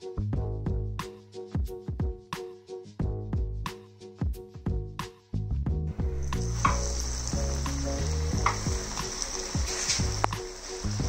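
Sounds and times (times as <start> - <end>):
background music with a beat: 0.0 - 11.0
food sizzling in hot oil: 6.0 - 11.0.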